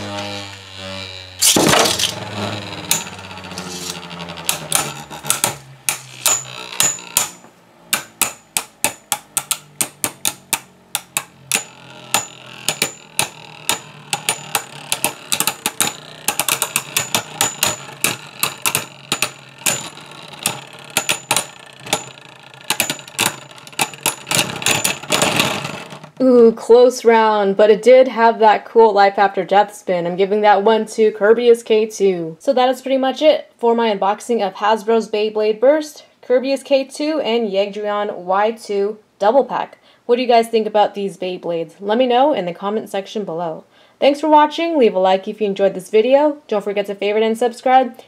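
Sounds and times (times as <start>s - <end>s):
spinning tops whirring: 0.0s - 26.0s.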